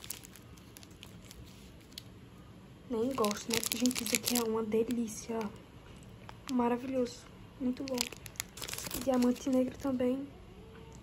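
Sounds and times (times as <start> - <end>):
plastic wrappers crackling: 0.0 - 2.1, 2.9 - 7.1, 7.7 - 10.0.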